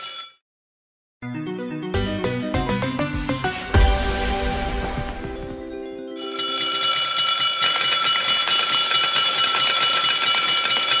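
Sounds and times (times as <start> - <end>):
bell-like ringing with rapid ticking: 6.1 - 11.0.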